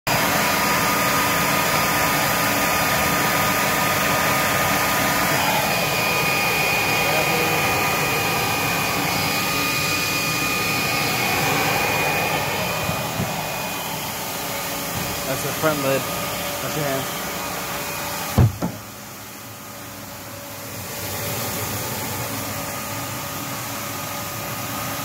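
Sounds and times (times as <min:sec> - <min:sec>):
floor scrubber motor whirring: 0:00.1 - 0:18.5
thin high whine: 0:03.3 - 0:18.1.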